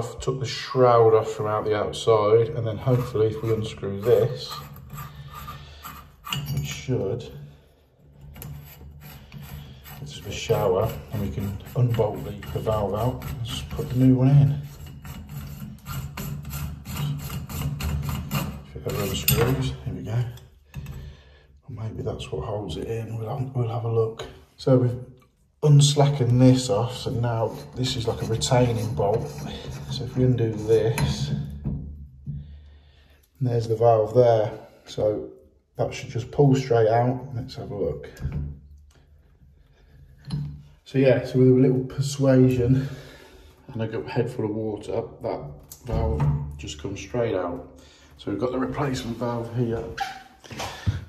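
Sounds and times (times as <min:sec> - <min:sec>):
plastic valve head scraping: 0:01.2 - 0:21.1, 0:24.2 - 0:32.6, 0:45.3 - 0:51.0
person speaking: 0:10.0 - 0:14.6, 0:21.7 - 0:31.5, 0:43.7 - 0:50.8.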